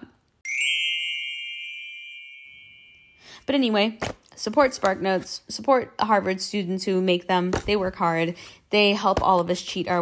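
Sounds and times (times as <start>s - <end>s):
bright bell-like ding: 0.4s - 3.4s.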